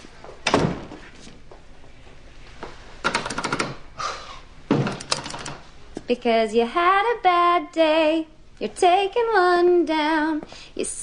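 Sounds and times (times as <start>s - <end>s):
rattling run of sharp clicks: 3.0s - 3.8s, 4.8s - 5.6s.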